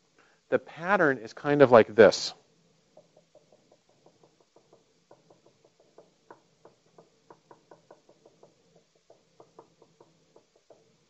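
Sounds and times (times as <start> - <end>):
marker tapping dots on paper: 2.9 - 11.0.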